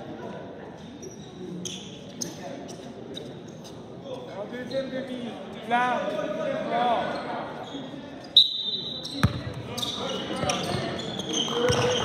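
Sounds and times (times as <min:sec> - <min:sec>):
murmur in a gym: 0:00.0 - 0:12.0.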